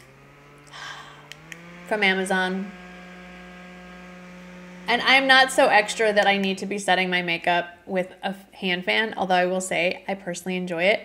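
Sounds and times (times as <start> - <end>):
handheld fan motor hum: 0.0 - 7.2
breathy rush of air: 0.6 - 1.4.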